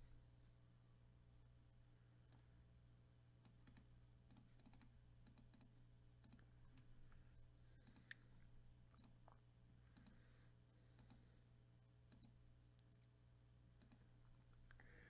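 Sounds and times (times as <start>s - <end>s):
low steady hum: 0.0s - 15.0s
faint computer mouse clicks: 7.8s - 8.3s, 9.9s - 10.2s, 10.9s - 11.2s, 12.1s - 13.0s, 13.8s - 14.0s.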